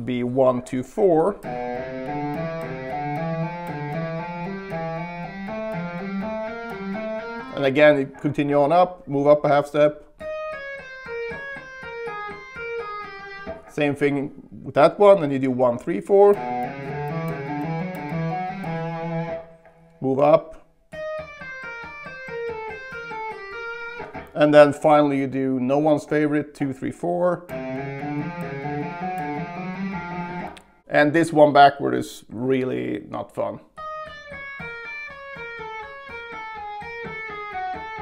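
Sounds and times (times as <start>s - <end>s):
electric guitar hammer-on notes: 1.3s - 8.8s, 10.1s - 13.9s, 16.0s - 20.2s, 20.9s - 24.8s, 27.5s - 30.8s, 33.8s - 38.0s.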